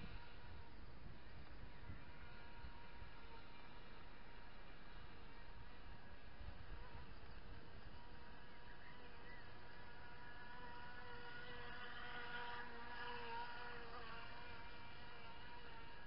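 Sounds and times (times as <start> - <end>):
model boat motor whining: 0.0 - 16.0.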